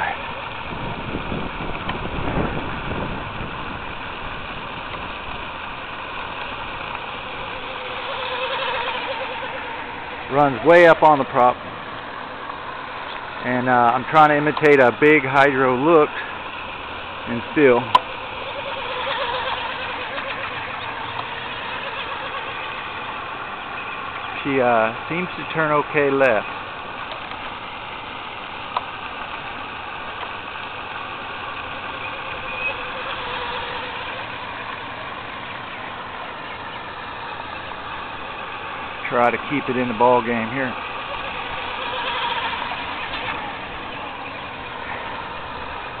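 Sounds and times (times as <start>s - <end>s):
high electric motor whine: 0.0s - 46.0s.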